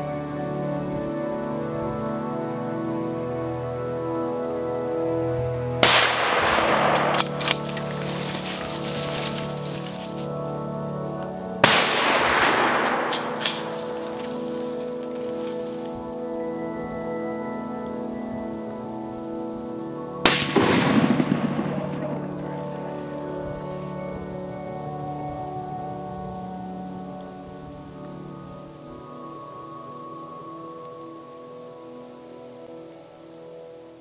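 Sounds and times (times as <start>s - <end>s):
organ-like background music: 0.0s - 34.0s
rifle shot: 5.8s - 8.0s, 11.6s - 14.4s, 20.3s - 22.8s.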